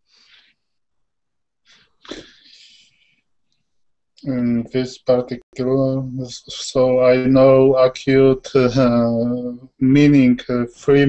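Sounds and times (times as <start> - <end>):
person breathing out: 1.7 - 3.2.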